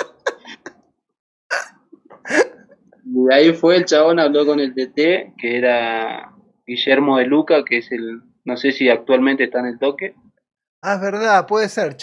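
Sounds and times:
man laughing: 0.0 - 0.8, 2.1 - 2.9.

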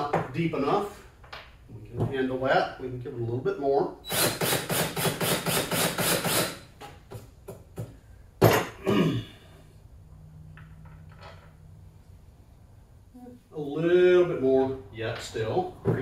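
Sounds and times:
drill cutting into wood: 4.1 - 6.6.

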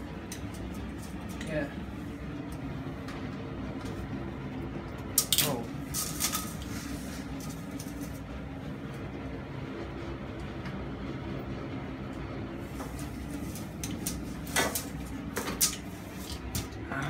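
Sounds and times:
low machine hum: 0.0 - 17.0.

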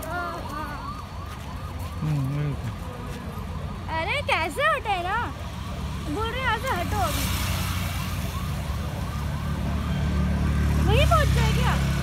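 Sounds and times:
police siren rising sweeps: 0.1 - 4.6, 5.2 - 11.9.

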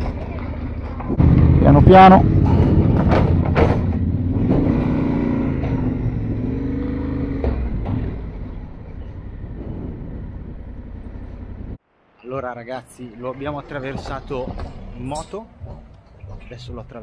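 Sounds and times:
motorcycle engine running: 0.0 - 11.8
sharp knocks from metal plates: 2.5 - 4.9.

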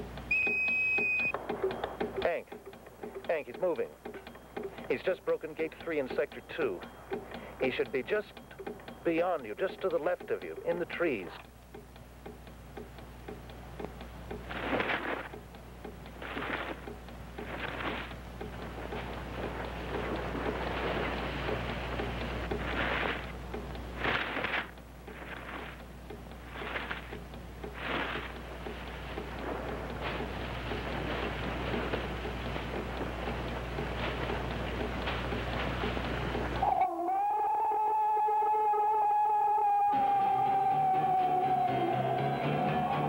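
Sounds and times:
steady low hum: 0.0 - 43.0
brush rustling and crashing: 14.5 - 15.3, 24.0 - 25.8.

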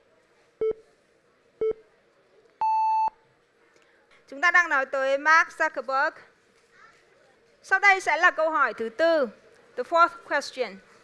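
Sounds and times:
short low beeps: 2.6 - 3.2.

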